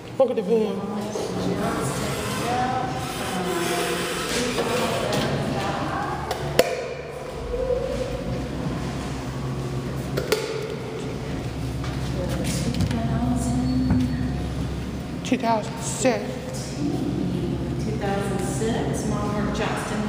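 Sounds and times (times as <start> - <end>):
indistinct voices in a hall: 0.0 - 20.0
steady low hum: 0.0 - 20.0.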